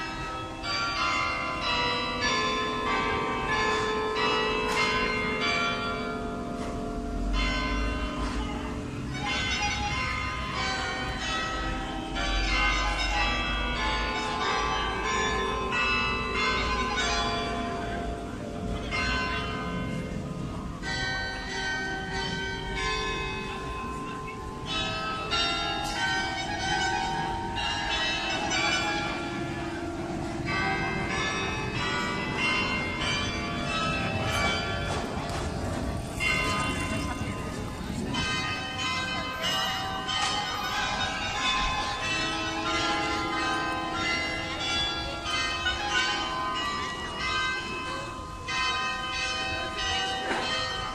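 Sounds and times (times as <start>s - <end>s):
church bells pealing: 0.0s - 50.9s.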